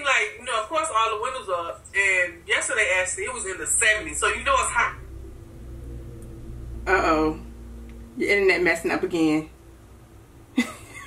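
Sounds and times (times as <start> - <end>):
faint steady tones: 0.0 - 11.0
low steady hum: 0.0 - 11.0.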